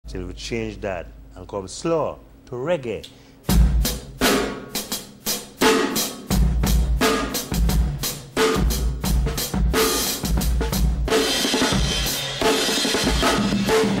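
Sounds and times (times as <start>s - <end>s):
drum kit playing reggae beat: 3.4s - 14.0s.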